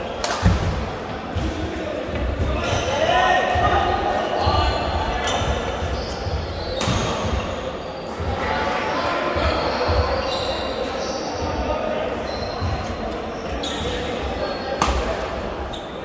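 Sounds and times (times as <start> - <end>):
murmur of voices: 0.0 - 16.0
rackets striking shuttlecock: 14.8 - 15.1.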